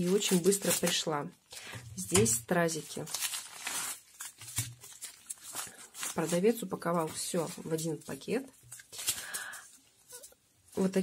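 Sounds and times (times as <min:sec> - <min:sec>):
plastic mailer bag crinkling: 0:00.0 - 0:01.2, 0:02.6 - 0:09.6.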